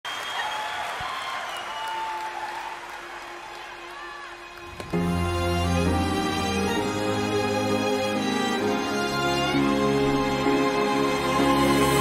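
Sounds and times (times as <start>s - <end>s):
arena audience applauding: 0.0s - 5.8s.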